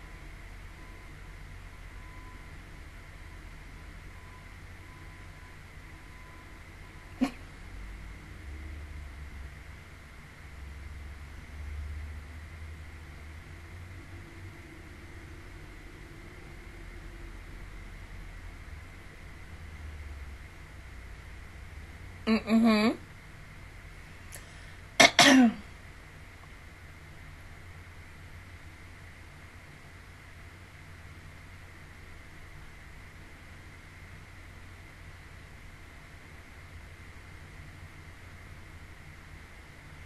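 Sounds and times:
woman clearing her throat: 7.2 - 7.5, 25.0 - 25.6.

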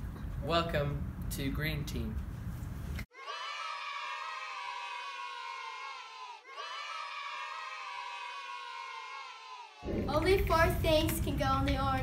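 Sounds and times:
children shouting and cheering: 3.1 - 10.5.

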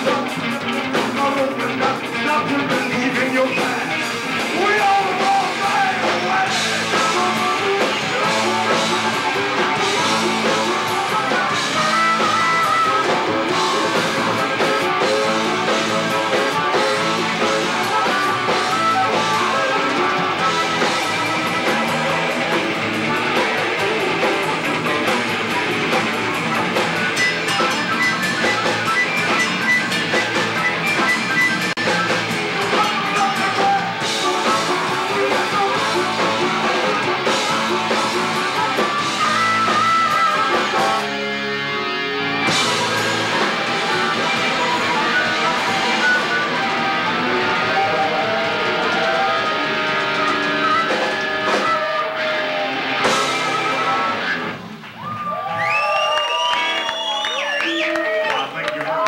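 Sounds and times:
bass guitar: 0.0 - 57.4
drum kit: 0.0 - 57.6
electric guitar: 0.0 - 59.0.

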